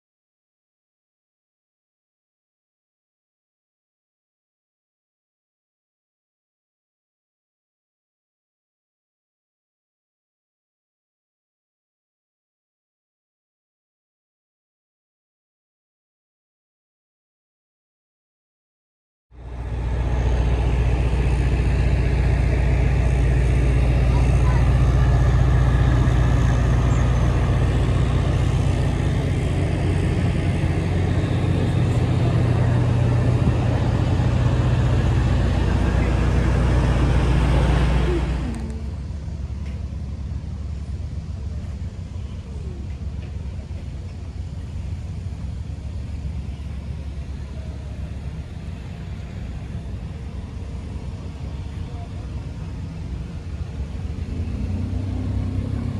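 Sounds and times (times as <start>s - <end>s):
diesel engine idling: 19.3s - 55.9s
low hum: 19.3s - 55.9s
faint background voices: 20.6s - 40.1s.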